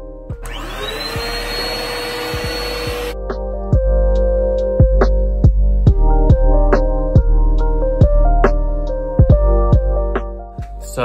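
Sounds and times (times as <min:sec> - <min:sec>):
vacuum cleaner running: 0:00.4 - 0:03.2.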